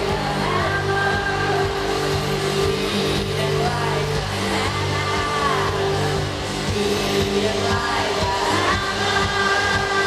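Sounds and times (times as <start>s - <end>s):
live rock band: 0.0s - 10.0s.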